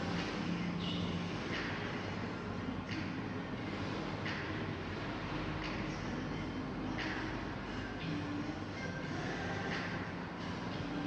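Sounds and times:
low rumble and hum: 0:00.0 - 0:11.0.

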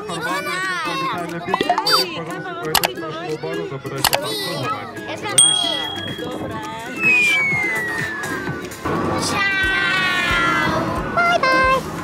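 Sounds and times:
falling whistle tone: 0:05.7 - 0:08.5.

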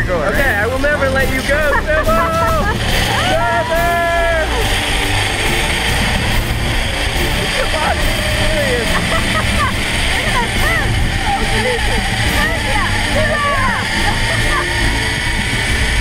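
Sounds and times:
zip-line trolley rolling whirr: 0:00.0 - 0:16.0.

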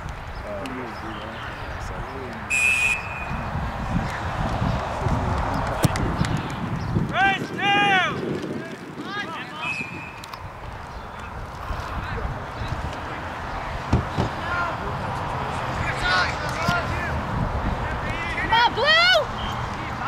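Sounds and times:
outdoor field noise: 0:00.0 - 0:20.0
referee's whistle blast: 0:02.5 - 0:03.4, 0:09.6 - 0:10.3.

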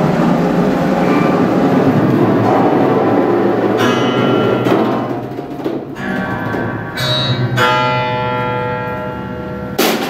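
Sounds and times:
drum kit hit: 0:00.9 - 0:08.0, 0:09.8 - 0:10.0
upright piano chord ringing: 0:06.9 - 0:09.8.

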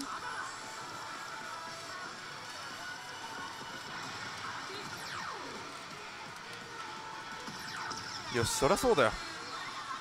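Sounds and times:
noisy gaming hall din: 0:00.0 - 0:10.0
slot machine music and effects: 0:07.4 - 0:09.2.

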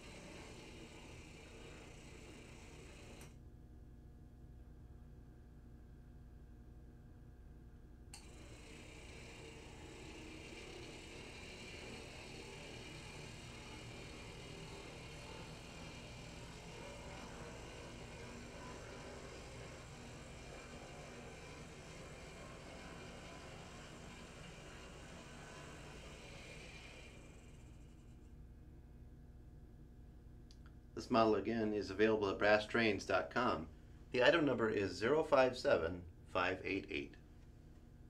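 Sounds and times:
model train motor whirring: 0:00.0 - 0:03.4, 0:08.2 - 0:28.4
thin constant whine: 0:00.0 - 0:38.0.

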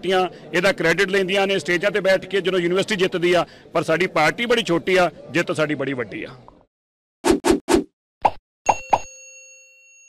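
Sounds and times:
bell-like ding: 0:08.7 - 0:10.0.

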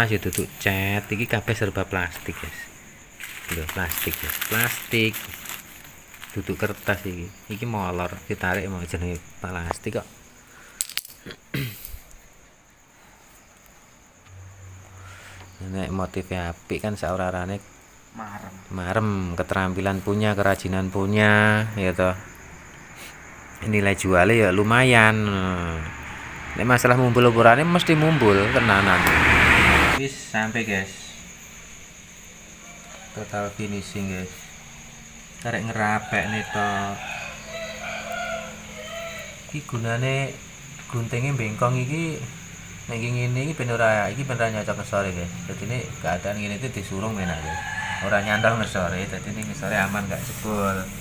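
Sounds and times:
rustles: 0:00.0 - 0:09.2, 0:49.2 - 0:51.0
crickets chirping: 0:00.0 - 0:51.0.

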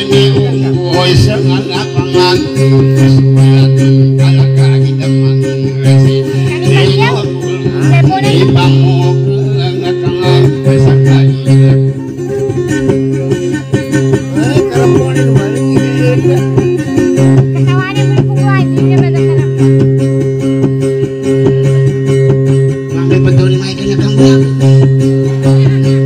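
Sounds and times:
person singing: 0:00.0 - 0:20.2, 0:22.9 - 0:26.0
acoustic guitar melody with drone: 0:00.0 - 0:26.0.

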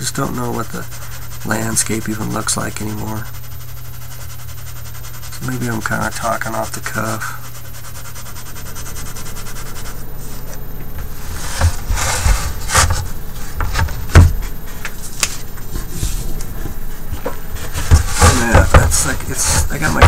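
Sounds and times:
colored pencil scratching on paper: 0:00.0 - 0:14.0, 0:17.4 - 0:20.0
knocks and bumps: 0:10.4 - 0:20.0.

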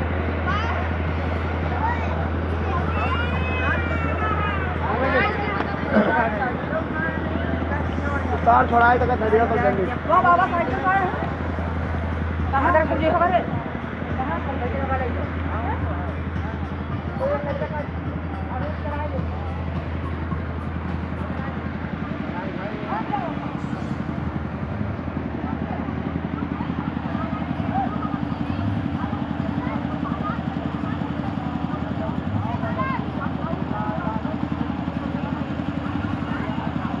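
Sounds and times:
background chatter of people: 0:00.0 - 0:37.0
steady low rumble: 0:00.0 - 0:37.0.

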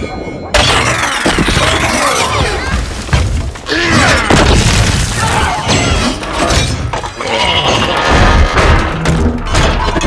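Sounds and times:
crashing and shattering debris: 0:00.5 - 0:10.0.

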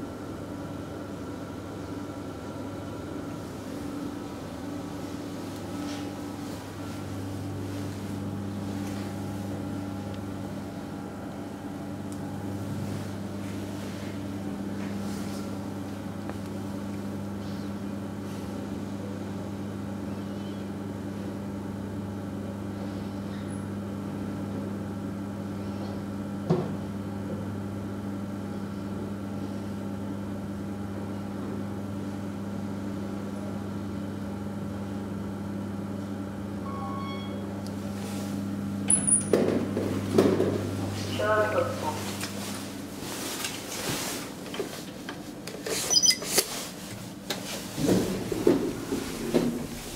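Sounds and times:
low machine hum: 0:00.0 - 0:49.9
elevator electronic chime: 0:36.6 - 0:37.6.

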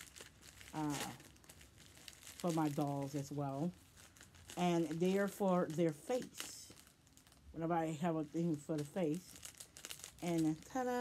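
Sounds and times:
plastic packet crinkling: 0:00.0 - 0:11.0.

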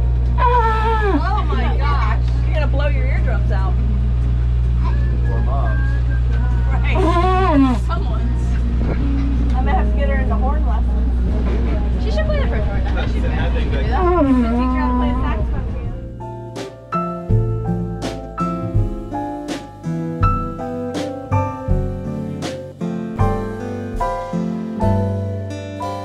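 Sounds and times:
boat engine droning: 0:00.0 - 0:16.3
people talking: 0:00.4 - 0:04.0, 0:04.8 - 0:16.1
people laughing: 0:00.8 - 0:02.3.

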